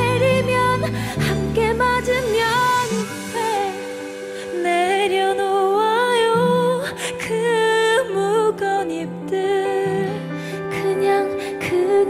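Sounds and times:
soft steady accompaniment: 0:00.0 - 0:12.0
woman singing a pop ballad: 0:00.0 - 0:12.0.

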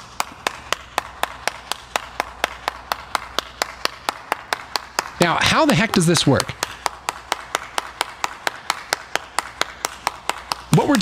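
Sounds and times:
person clapping hands: 0:00.0 - 0:11.0.

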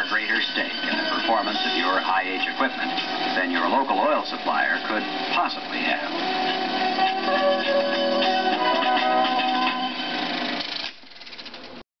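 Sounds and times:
film soundtrack music: 0:00.0 - 0:10.8
film projector mechanical rattle: 0:10.0 - 0:11.8.

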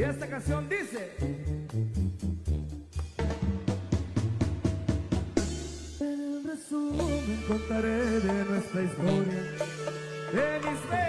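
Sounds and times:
low bass notes: 0:00.0 - 0:06.0, 0:06.9 - 0:11.0
drum fill: 0:02.5 - 0:06.2.

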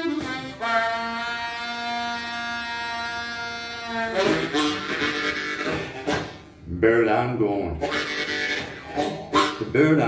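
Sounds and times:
harmonica playing blues: 0:00.0 - 0:06.7, 0:07.4 - 0:10.0.

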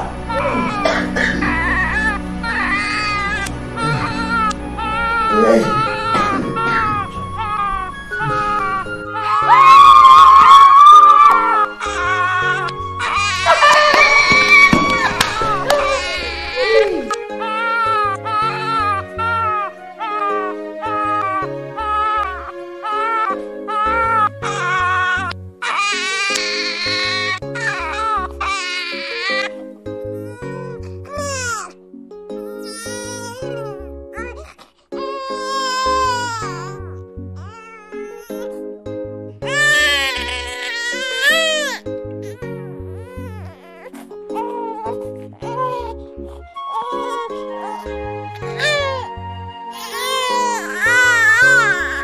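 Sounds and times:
film music with low notes: 0:00.0 - 0:13.9, 0:14.5 - 0:52.0
baby crying: 0:00.3 - 0:29.6, 0:30.2 - 0:31.8, 0:32.4 - 0:38.6, 0:39.4 - 0:52.0.

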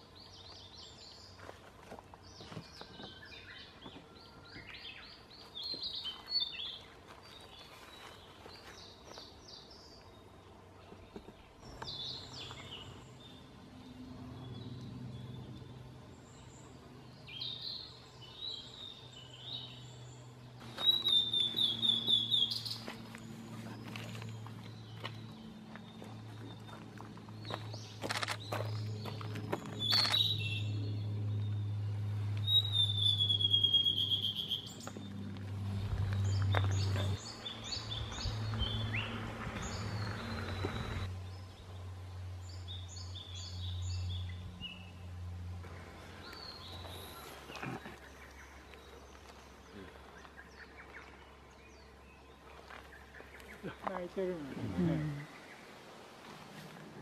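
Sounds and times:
songbirds singing: 0:00.0 - 0:57.0
low hum: 0:11.6 - 0:53.6.

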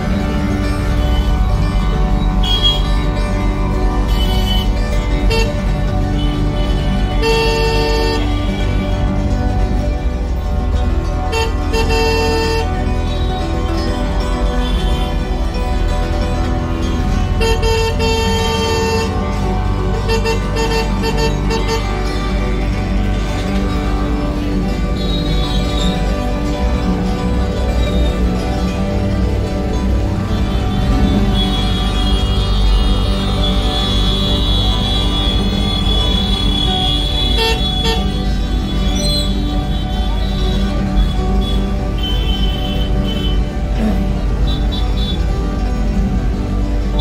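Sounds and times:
background music: 0:00.0 - 0:47.0
rumble of engines: 0:00.0 - 0:47.0
scooter horns honking: 0:02.2 - 0:09.2, 0:11.1 - 0:13.8, 0:16.5 - 0:23.8, 0:29.4 - 0:45.7.

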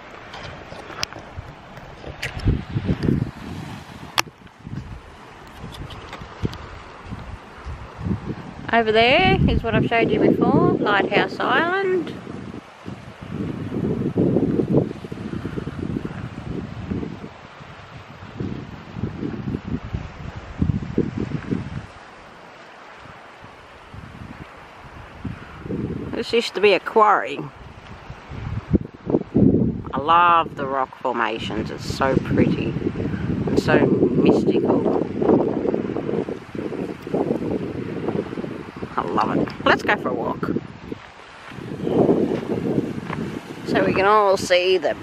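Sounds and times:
wind buffeting microphone: 0:00.0 - 0:45.0.

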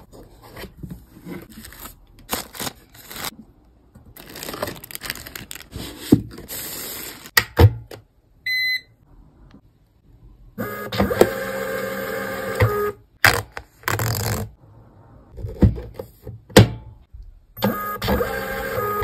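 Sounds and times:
paper packaging clicks: 0:01.5 - 0:03.4, 0:04.2 - 0:05.9.

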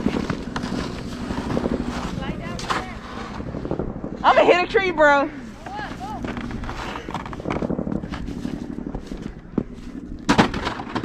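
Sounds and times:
footsteps crunching in snow: 0:00.0 - 0:04.4, 0:05.4 - 0:10.3.

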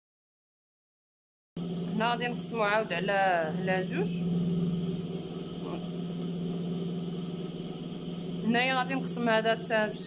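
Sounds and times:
sewing machine motor humming: 0:01.6 - 0:10.0.

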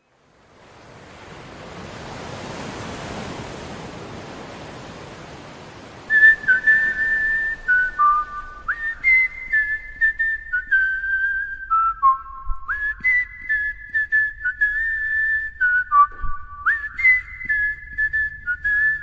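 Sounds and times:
soft wash of noise: 0:00.0 - 0:19.0
person whistling a slow tune: 0:06.1 - 0:19.0.

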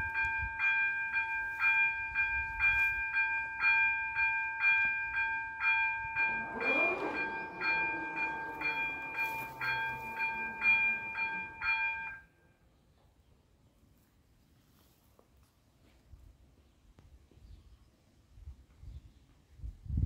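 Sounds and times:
level-crossing warning bells: 0:00.0 - 0:12.6
barrier arm motor whine: 0:05.9 - 0:12.2.

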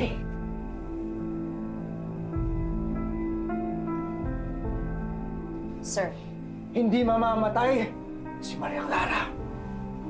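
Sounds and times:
soft slow background music: 0:00.0 - 0:10.0.

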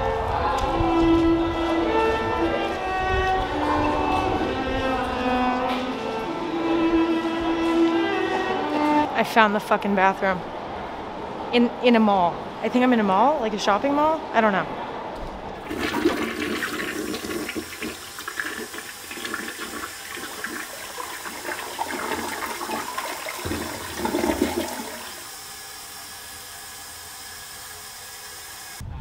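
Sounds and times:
toilet flushing: 0:15.6 - 0:28.8.

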